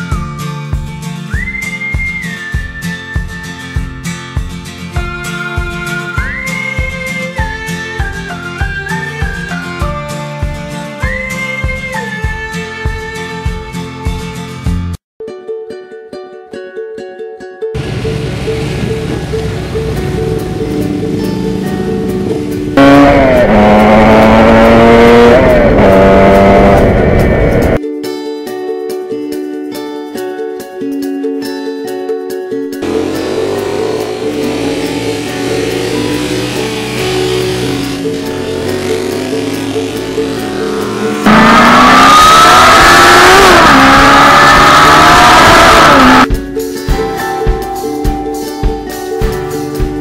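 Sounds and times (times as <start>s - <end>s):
music with drums: 0.0s - 15.0s, 46.2s - 50.0s
plucked-string background music: 0.0s - 50.0s
motorcycle engine revving: 17.8s - 27.8s, 32.8s - 46.3s.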